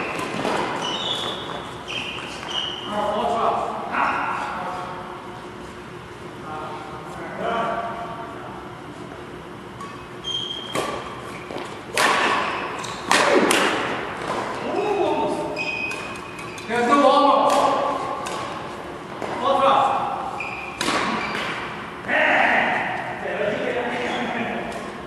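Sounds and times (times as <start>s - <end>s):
racket smacking shuttlecock: 10.6s - 14.5s, 20.7s - 21.8s.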